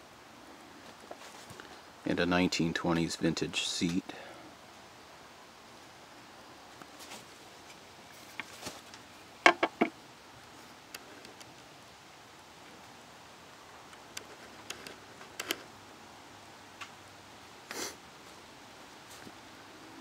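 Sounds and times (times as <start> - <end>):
faint steady hiss: 0.0 - 20.0
sharp clicks and knocks: 9.4 - 10.0.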